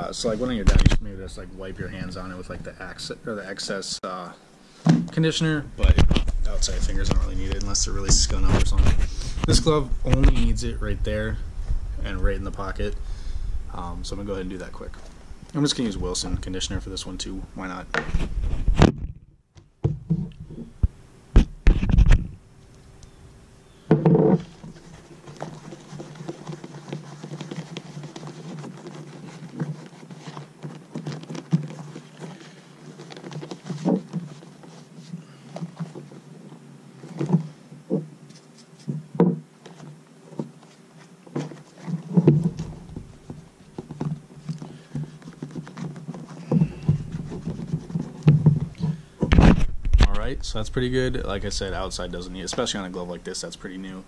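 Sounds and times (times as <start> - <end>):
faint steady hum: 0.0 - 54.0
glove knocking on wooden table: 23.9 - 24.6
hands rubbing leather glove: 24.2 - 49.7.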